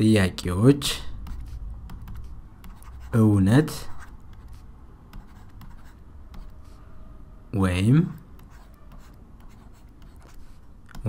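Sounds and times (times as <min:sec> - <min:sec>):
pen scratching and tapping: 0:01.3 - 0:03.1, 0:05.2 - 0:06.6, 0:08.4 - 0:11.0.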